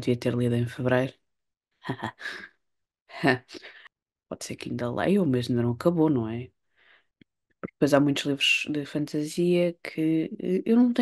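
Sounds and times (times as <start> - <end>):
woman laughing: 1.9 - 2.5.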